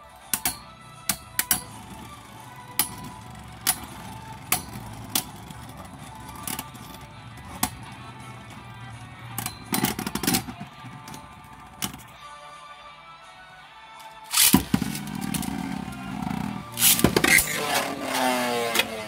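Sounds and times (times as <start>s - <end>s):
spinning tops clacking together: 14.2s - 15.5s, 16.8s - 17.8s
spinning tops whirring: 14.3s - 19.0s.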